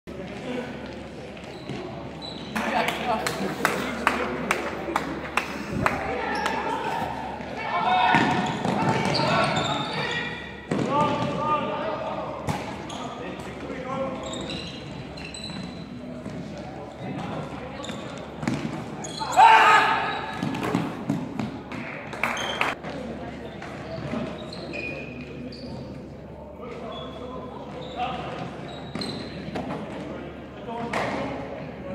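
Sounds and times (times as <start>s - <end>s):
sneakers squeaking: 0.1s - 3.4s, 5.9s - 11.8s, 12.4s - 30.2s
players calling out: 2.3s - 12.2s
footfalls on court floor: 15.4s - 19.0s, 20.2s - 24.3s.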